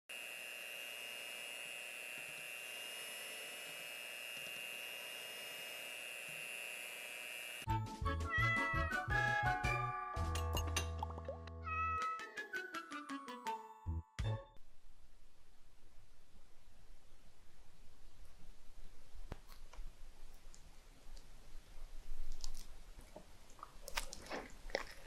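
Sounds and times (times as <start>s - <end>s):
electric hand mixer whining: 0.1s - 7.7s
jingle music with beat: 7.7s - 11.1s, 12.2s - 14.6s.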